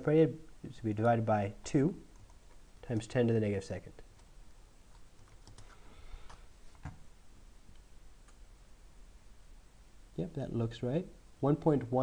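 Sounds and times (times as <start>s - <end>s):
computer keyboard typing: 4.9s - 5.8s.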